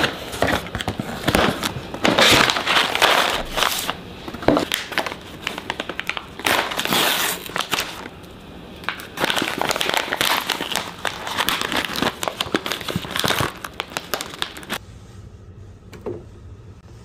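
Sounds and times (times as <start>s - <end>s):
paper bag tearing: 0.0s - 4.0s, 4.6s - 8.2s, 8.9s - 14.8s
foil paper bag crinkling: 0.0s - 14.8s.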